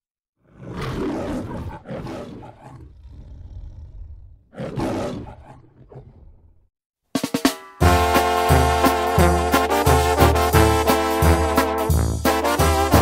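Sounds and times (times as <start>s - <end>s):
lion growl: 0.4s - 6.7s
lion roaring: 0.4s - 6.7s.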